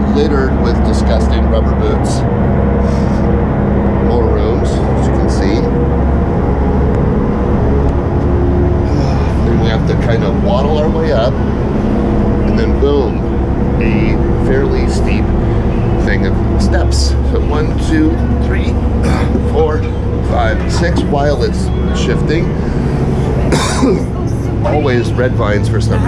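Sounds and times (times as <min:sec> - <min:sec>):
boat engines droning: 0:00.0 - 0:26.0.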